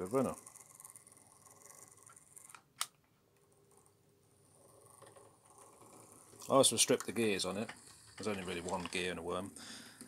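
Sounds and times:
model locomotive motor whirring: 0.0 - 2.6.

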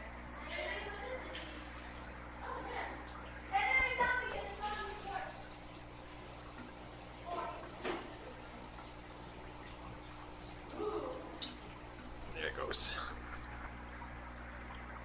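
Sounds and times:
aquarium equipment humming: 0.0 - 15.0
water trickling: 0.0 - 15.0.

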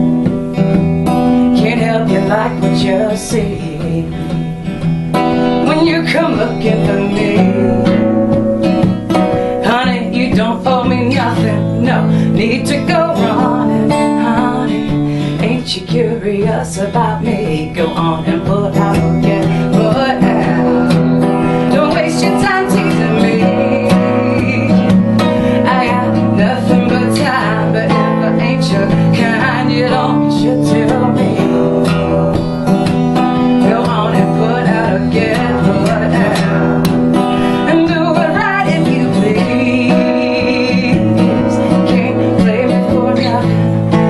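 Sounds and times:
strummed acoustic guitar: 0.0 - 44.0.

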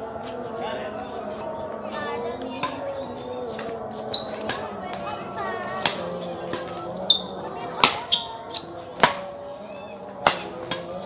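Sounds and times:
racket hitting shuttlecock: 2.5 - 2.8, 3.5 - 9.3, 10.2 - 11.0.

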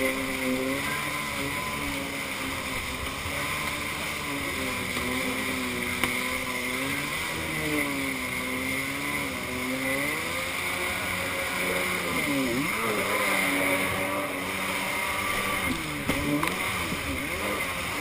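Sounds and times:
jet ski engine running: 0.0 - 18.0.

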